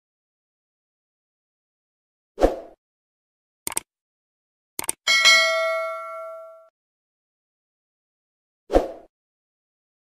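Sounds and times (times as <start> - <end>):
double mouse click: 3.7 - 3.9, 4.8 - 5.0
notification bell ding: 5.1 - 6.7.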